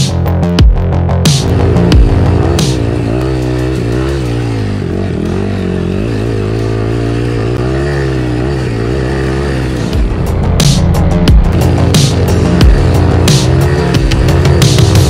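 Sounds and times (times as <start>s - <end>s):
electronic music: 0.0s - 15.0s
dirt bike engine: 1.1s - 15.0s.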